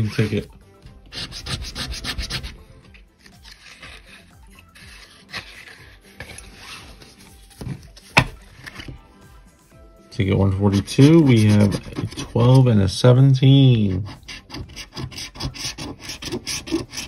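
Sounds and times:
paper tickets rubbing and sliding: 0.0s - 8.9s, 10.2s - 13.0s.

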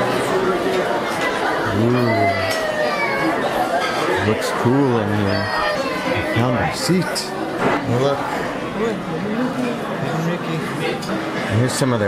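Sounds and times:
overlapping conversation of diners: 0.0s - 12.0s.

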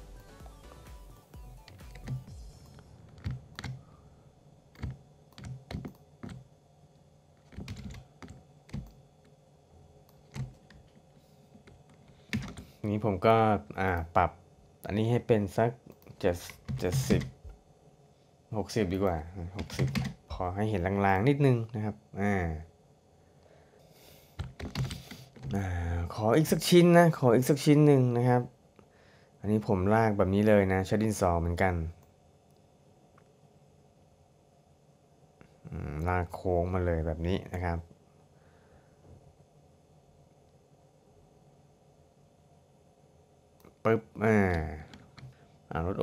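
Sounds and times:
computer keyboard and mouse clicking: 1.6s - 2.3s, 3.0s - 3.8s, 4.7s - 6.5s, 7.4s - 9.4s, 10.1s - 11.0s, 11.6s - 12.8s, 15.9s - 17.4s, 19.6s - 20.2s, 24.4s - 25.6s.

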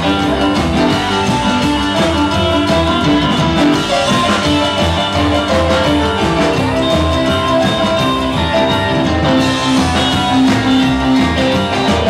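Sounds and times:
drum kit: 0.0s - 12.0s
electric guitar: 0.0s - 12.0s
keyboard: 0.0s - 12.0s
upright double bass: 0.0s - 12.0s.

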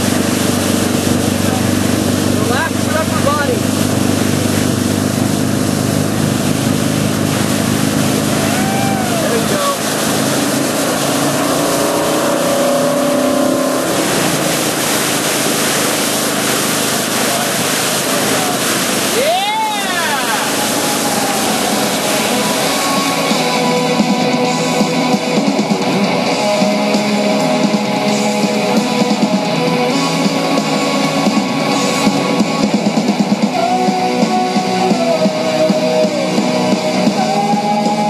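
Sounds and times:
boat engine running: 0.0s - 38.0s
rushing water: 0.0s - 38.0s.

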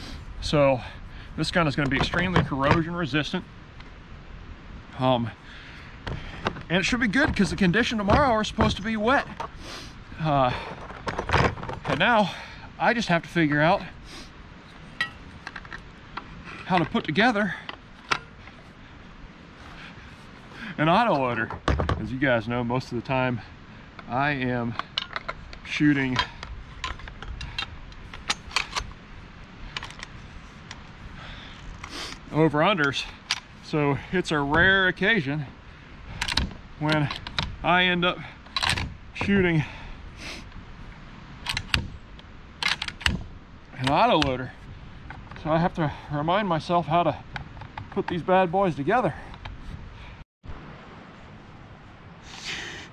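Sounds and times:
faint ticks of gun parts handled: 14.7s - 18.7s, 29.7s - 31.0s.

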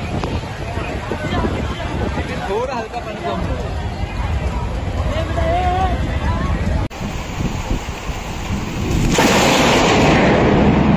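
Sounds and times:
rain falling steadily: 0.0s - 10.2s
loud thunder clap: 7.1s - 10.9s.

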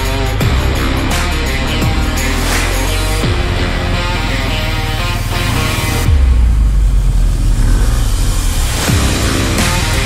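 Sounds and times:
background music: 0.0s - 10.0s
deep motorcycle engine rumble: 0.0s - 10.0s.

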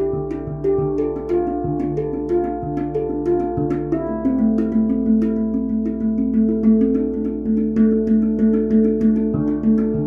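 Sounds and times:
handpan notes ringing: 0.0s - 10.0s.

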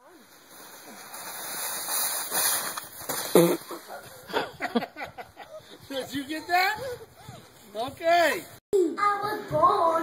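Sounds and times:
plastic sled sliding over snow: 0.0s - 4.4s.

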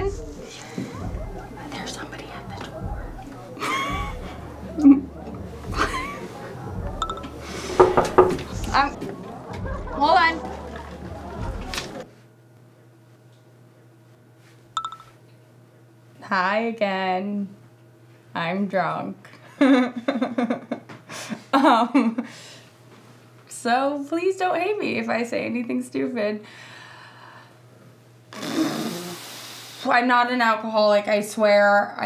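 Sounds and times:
smartphone beep: 7.0s - 7.2s, 14.8s - 15.1s.

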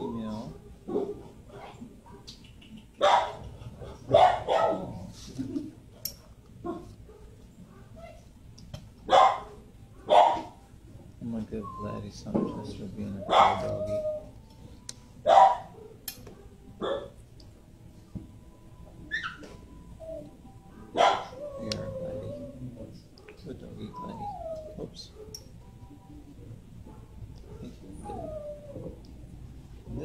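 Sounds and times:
dogs barking: 0.1s - 5.1s, 6.6s - 8.2s, 9.0s - 10.6s, 12.5s - 14.2s, 15.2s - 17.2s, 20.8s - 25.6s, 26.8s - 29.0s.

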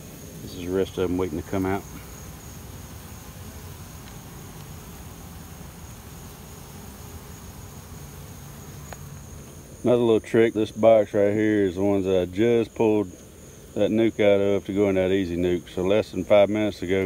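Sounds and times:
honeybees buzzing: 0.0s - 17.0s.

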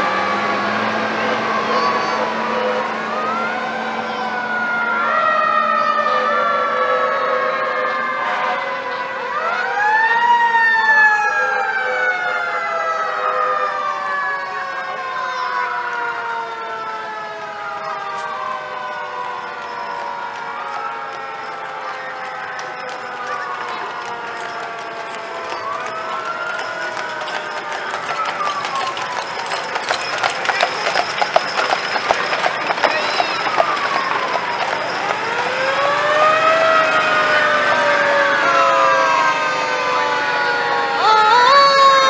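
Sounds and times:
fire truck sirens wailing: 0.0s - 42.0s.

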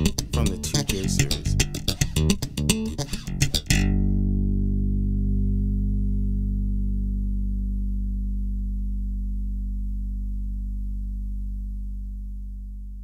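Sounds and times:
electric bass finger-plucked notes: 0.0s - 13.0s.

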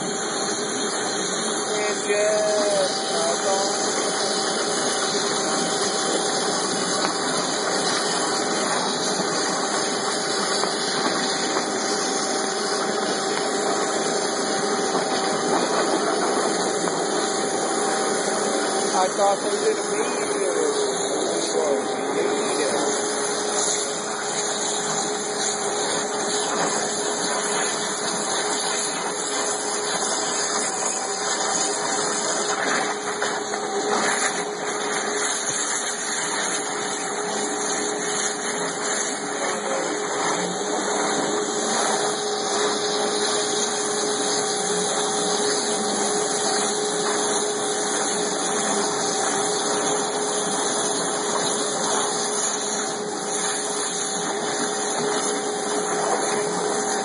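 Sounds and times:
high-pressure water hissing: 0.0s - 57.0s
steady machine tone: 0.0s - 57.0s.

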